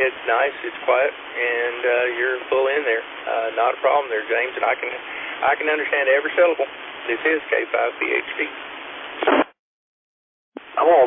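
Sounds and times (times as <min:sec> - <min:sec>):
radio voice transmissions: 0:00.0 - 0:08.6, 0:09.2 - 0:09.5, 0:10.6 - 0:11.0
radio click: 0:09.2 - 0:09.5.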